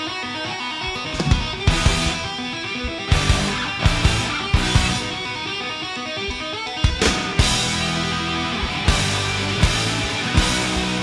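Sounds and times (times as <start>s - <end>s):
heavy metal band playing live: 1.0s - 11.0s.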